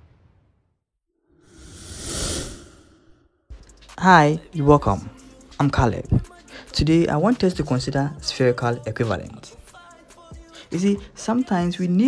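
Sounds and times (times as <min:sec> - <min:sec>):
breathy whoosh: 0:01.3 - 0:03.4.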